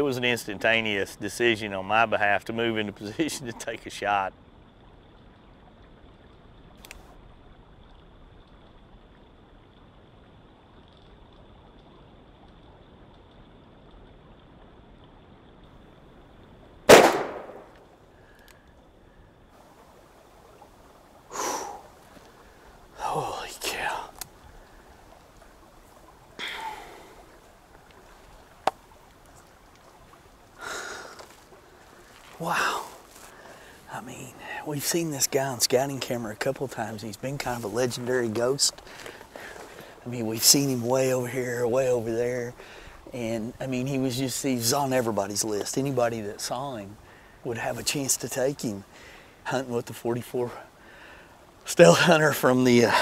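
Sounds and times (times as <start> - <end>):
revolver gunshot: 16.9 - 17.8
person whispering: 23.0 - 24.2, 32.4 - 33.0
heavy breathing: 26.4 - 27.3, 30.6 - 31.3.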